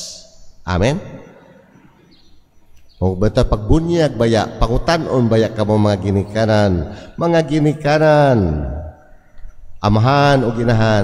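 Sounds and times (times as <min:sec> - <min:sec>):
faint high chirps: 0:00.0 - 0:11.0.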